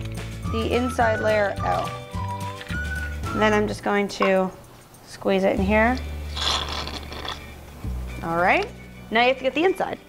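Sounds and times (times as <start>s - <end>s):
background music with low bass: 0.0s - 10.0s.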